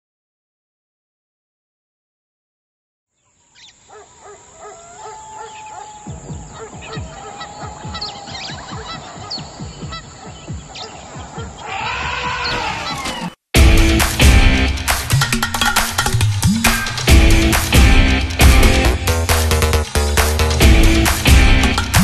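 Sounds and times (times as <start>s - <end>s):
animal and bird-like calls: 3.1s - 13.4s.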